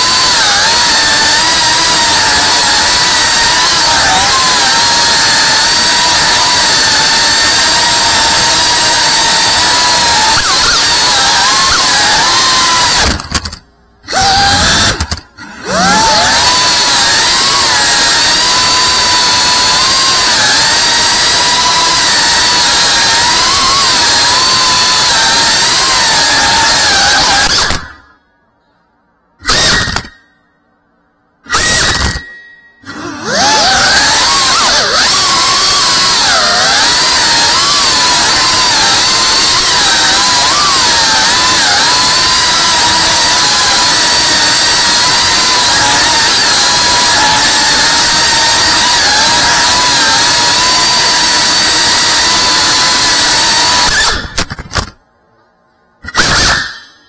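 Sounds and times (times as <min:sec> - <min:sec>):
drone motors whining: 0:00.0 - 0:28.2, 0:29.4 - 0:30.3, 0:31.4 - 0:55.0.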